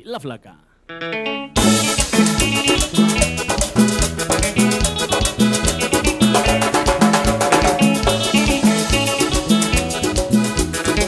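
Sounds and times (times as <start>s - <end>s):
accordion: 1.0s - 11.0s
live band instrumental: 1.0s - 11.0s.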